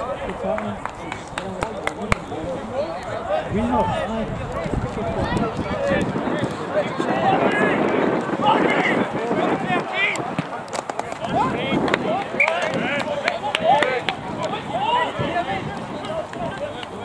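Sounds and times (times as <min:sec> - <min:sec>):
crowd chatter and calling: 0:00.0 - 0:17.0.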